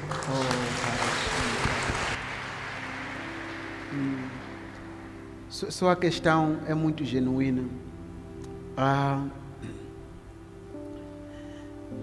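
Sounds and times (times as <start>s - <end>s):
audience applause: 0.0s - 5.6s
soft background music: 0.0s - 12.0s.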